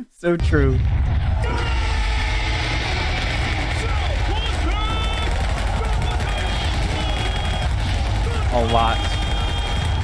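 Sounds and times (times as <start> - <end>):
low rumble: 0.4 - 8.5
gunfire: 0.8 - 10.0
shouted cries: 1.3 - 10.0.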